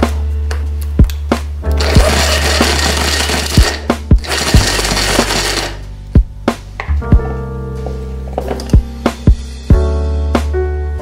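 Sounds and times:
background music with percussion: 0.0 - 10.6
electric hand blender chopping: 1.8 - 5.8.

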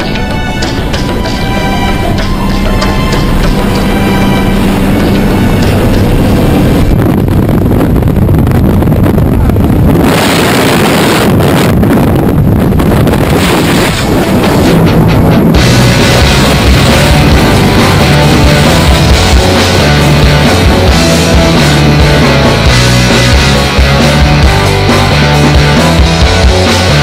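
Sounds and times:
loud background music: 0.0 - 7.6, 14.1 - 27.0.

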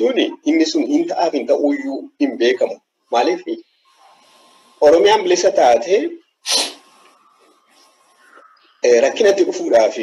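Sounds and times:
person's sharp burst of breath: 6.4 - 7.2.

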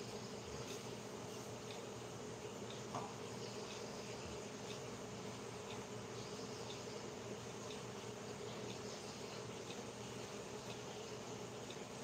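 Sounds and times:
faint buzzing hum: 0.0 - 12.0.

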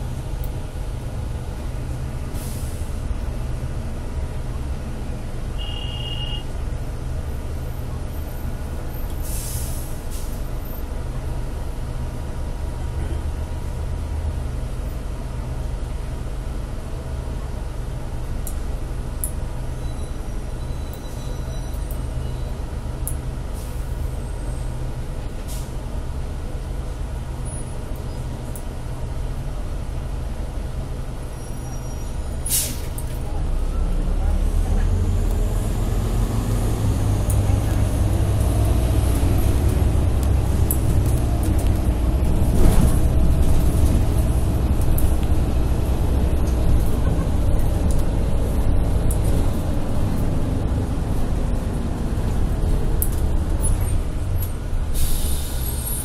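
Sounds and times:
bus engine rumbling: 0.0 - 56.0
air hiss: 54.9 - 56.0.

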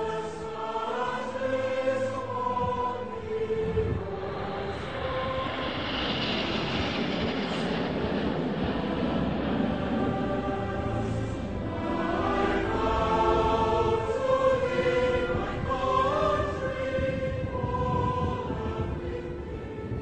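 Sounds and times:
choral music: 0.0 - 20.0
jets flying past overhead: 1.1 - 20.0.

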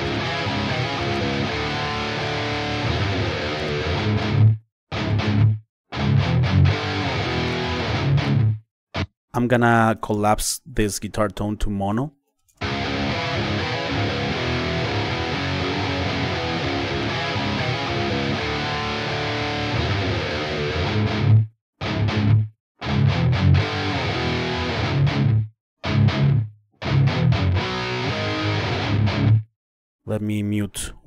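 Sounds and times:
distorted electric guitar riff: 0.0 - 9.1, 12.6 - 29.4.

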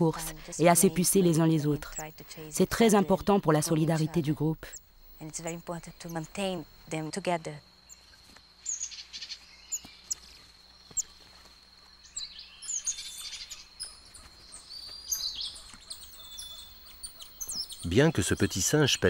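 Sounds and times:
animal chirps and whistled calls: 1.6 - 3.3, 11.9 - 19.0.

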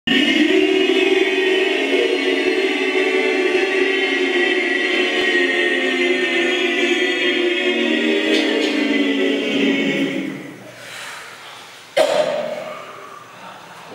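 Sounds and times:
group of voices singing: 0.0 - 10.9.

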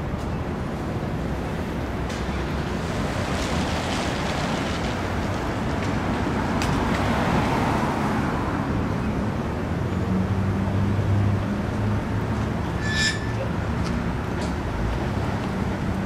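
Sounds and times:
street traffic: 0.0 - 16.0.

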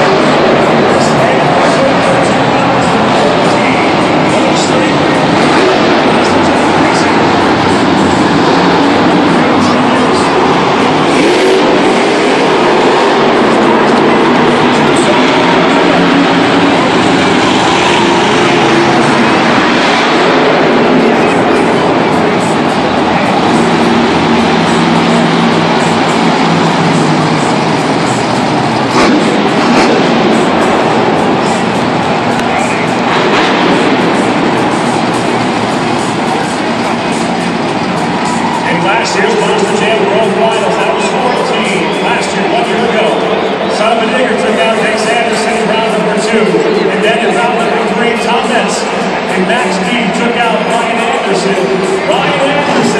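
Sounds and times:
monster truck engine revving: 0.0 - 52.9.

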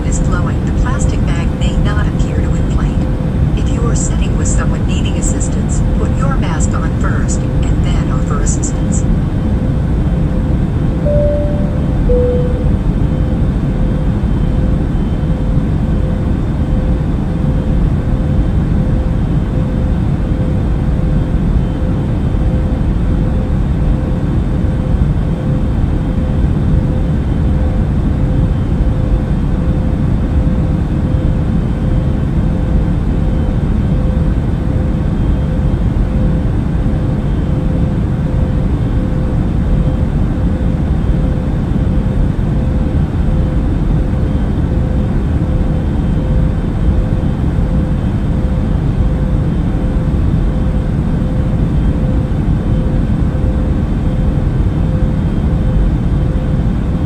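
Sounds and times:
airliner cabin drone: 0.0 - 57.0
two-note falling chime: 11.0 - 12.8.

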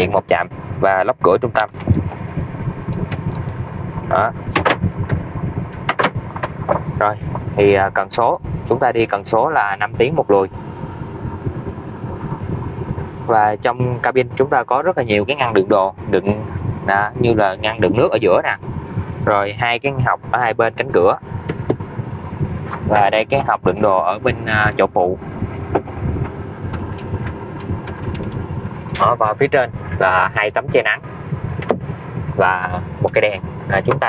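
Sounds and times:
van engine idling: 0.0 - 34.0
gear lever knocks: 4.5 - 5.2, 5.8 - 6.8.

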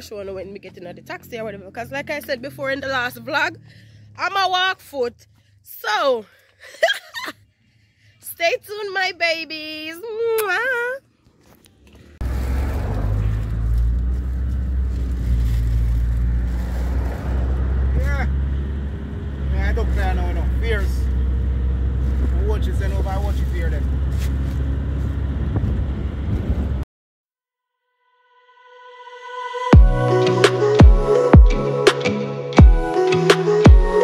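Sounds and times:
car engine and tyres rumbling: 0.0 - 5.7, 11.0 - 26.8
voices talking: 17.7 - 18.6, 19.4 - 21.2, 22.2 - 24.0.

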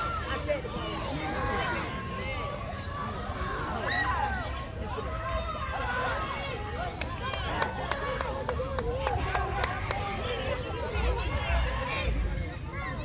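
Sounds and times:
spectators talking and calling out: 0.0 - 13.0.

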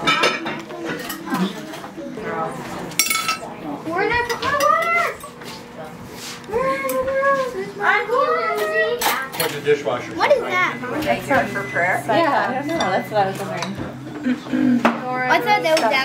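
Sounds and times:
spoons and dishes clinking: 3.0 - 3.4
child's high voice: 6.5 - 9.3.

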